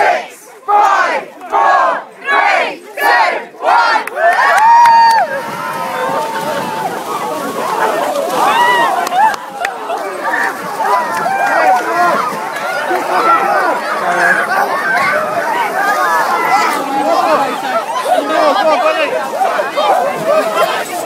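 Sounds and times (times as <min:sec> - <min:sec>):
crowd chanting a countdown: 0:00.0 - 0:04.5
crowd cheering and screaming: 0:04.1 - 0:21.0.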